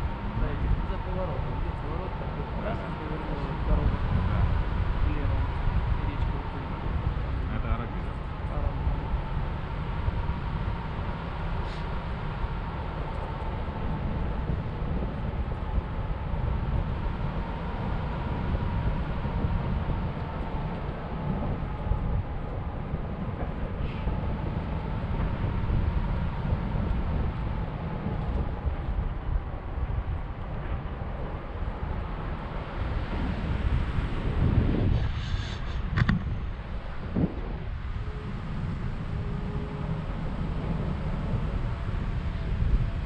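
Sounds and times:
airflow buffeting microphone: 0.0 - 43.0.

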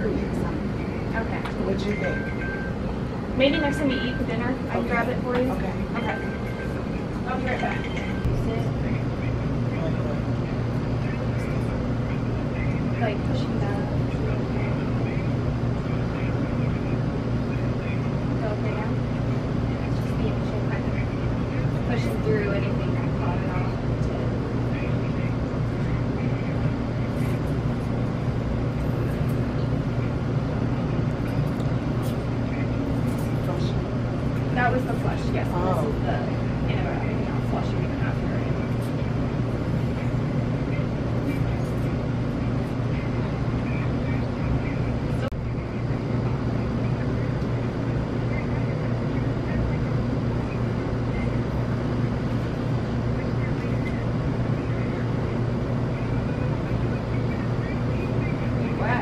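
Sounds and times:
faint indistinct voices: 0.0 - 59.0
low hum and rumble: 0.0 - 59.0.

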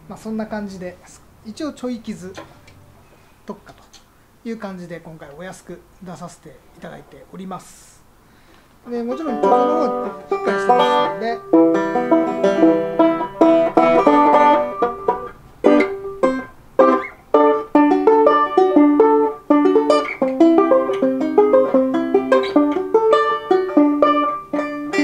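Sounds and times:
fingerpicked resonator banjo: 9.1 - 25.0.

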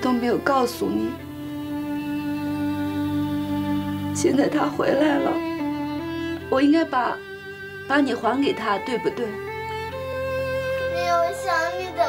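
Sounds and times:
soft held-note background music: 0.0 - 12.0.

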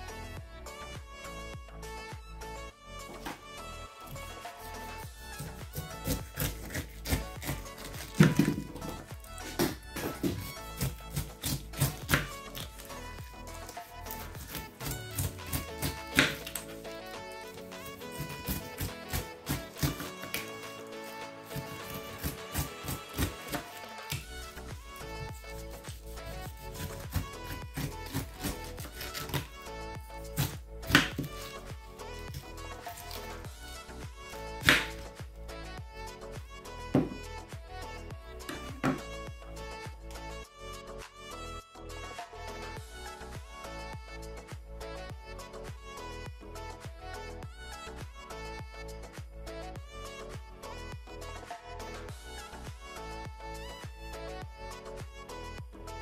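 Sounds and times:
background music: 0.0 - 56.0
knife striking cutting board: 5.4 - 12.7, 14.1 - 16.6, 18.1 - 20.5, 21.5 - 24.3, 25.3 - 29.5, 30.3 - 31.5, 34.6 - 35.0, 37.0 - 37.2, 38.5 - 39.1.

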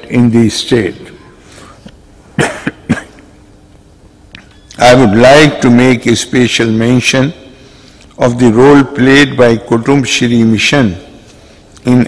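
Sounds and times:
man coughing: 2.3 - 3.3.

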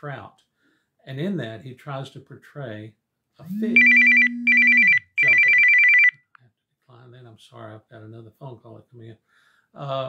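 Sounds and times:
electronic phone ringing: 3.6 - 6.2.

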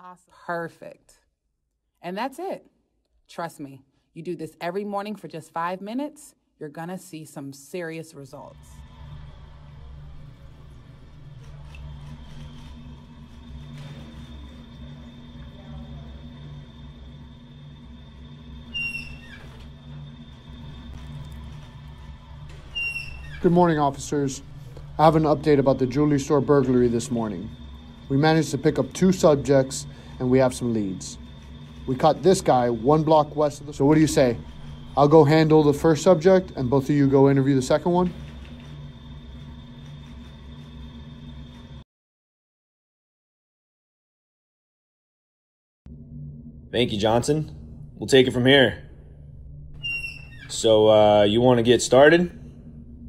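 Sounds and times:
steady low hum: 0.0 - 41.8, 45.9 - 53.0
faint high whine: 7.0 - 41.8, 45.9 - 53.0.

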